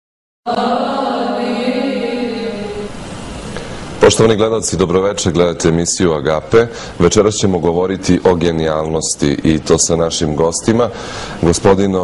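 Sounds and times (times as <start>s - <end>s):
choral chant music: 0.5s - 3.7s.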